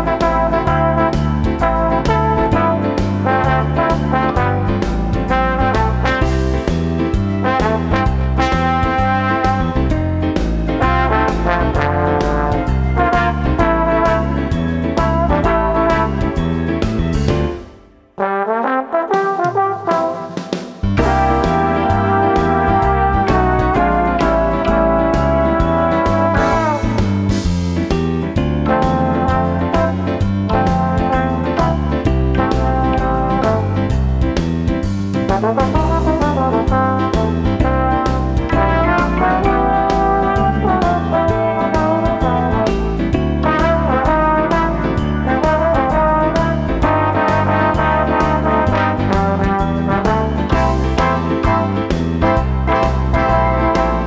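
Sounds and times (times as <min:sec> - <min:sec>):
trombone melody: 0:00.0 - 0:34.6, 0:35.2 - 0:54.0
instrumental jazz tune: 0:00.0 - 0:54.0
piano: 0:00.0 - 0:54.0
steady beat: 0:19.1 - 0:54.0.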